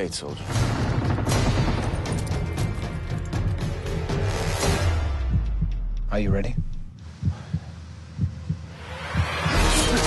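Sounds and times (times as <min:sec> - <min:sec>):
low heartbeat-like thumps: 0:05.1 - 0:09.6.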